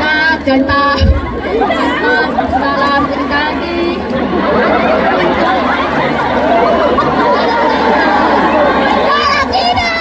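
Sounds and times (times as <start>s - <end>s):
girl singing amplified: 0.0s - 4.1s, 9.1s - 10.0s
crowd singing along: 0.0s - 10.0s
low thump: 1.0s - 1.4s.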